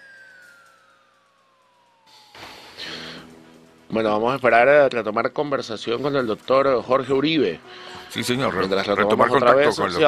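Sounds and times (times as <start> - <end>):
electronic tone gliding downward: 0.0 - 4.4.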